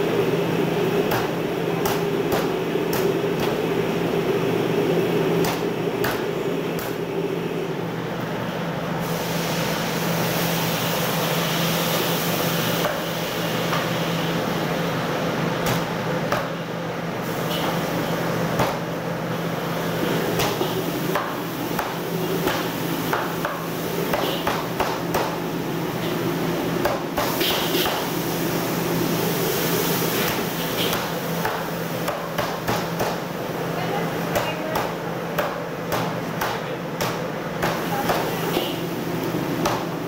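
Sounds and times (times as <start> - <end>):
steady low hum: 0.0 - 10.0
fan hum and air rush: 0.0 - 40.0.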